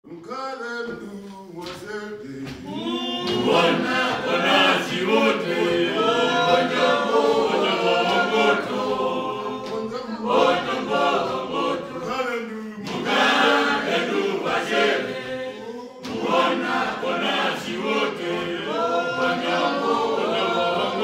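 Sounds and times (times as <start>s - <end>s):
group singing unaccompanied: 0.7s - 21.0s.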